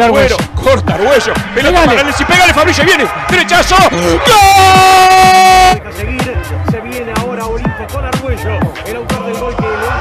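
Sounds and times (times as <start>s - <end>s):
commentator shouting goal: 1.0s - 5.8s.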